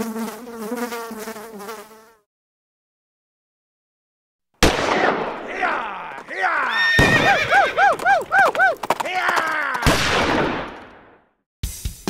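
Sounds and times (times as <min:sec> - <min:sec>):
sharp crack: 0:04.6 - 0:06.3, 0:09.7 - 0:11.2
horse whinnying: 0:06.3 - 0:09.9.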